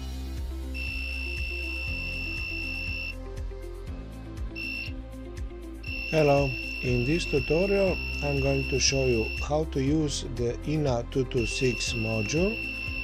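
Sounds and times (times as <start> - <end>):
background music with beat: 0.0 - 13.0
buzzer warning beeps: 0.8 - 3.2, 4.6 - 5.0, 5.8 - 9.5, 11.4 - 13.0.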